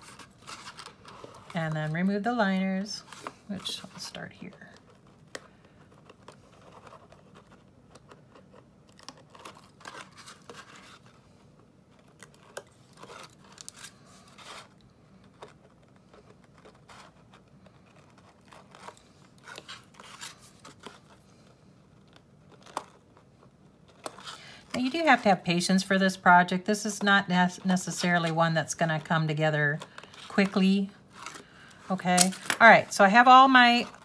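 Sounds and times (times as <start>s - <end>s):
paper liner scratching and crinkling: 0.0s - 34.0s.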